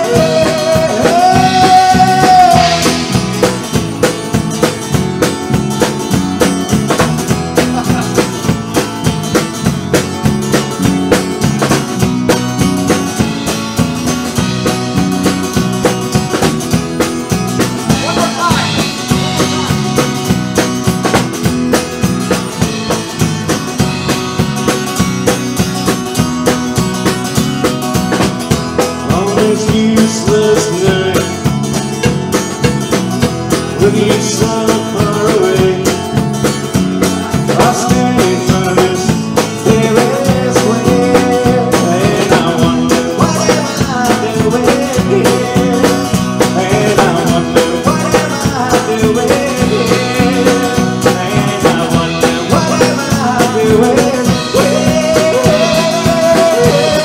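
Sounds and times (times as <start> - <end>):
drum kit beat: 0.0 - 57.0
strummed acoustic guitar: 0.0 - 57.0.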